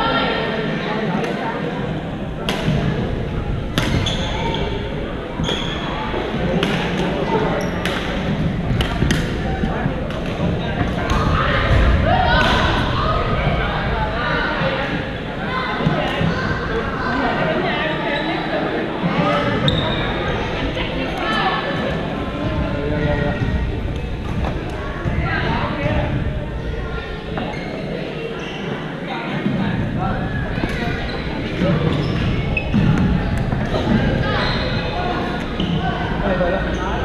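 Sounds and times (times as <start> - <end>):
echoing chatter of players: 0.0 - 37.0
sneaker squeaks on court floor: 3.8 - 4.8, 5.4 - 6.0, 7.6 - 8.2, 19.6 - 20.2, 30.6 - 33.5
racket hitting shuttlecock: 7.8 - 9.4.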